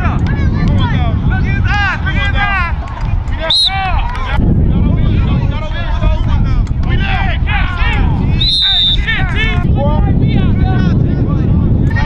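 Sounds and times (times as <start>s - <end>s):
voices calling and talking: 0.0s - 12.0s
wind rumbling on microphone: 0.0s - 12.0s
whistle blast: 3.4s - 3.9s, 8.4s - 9.1s.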